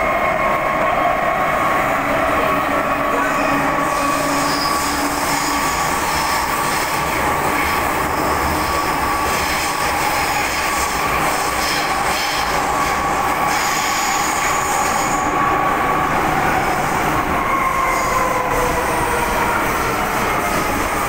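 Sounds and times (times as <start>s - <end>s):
train rumble: 0.0s - 21.0s
high wheel squeal: 3.2s - 6.4s.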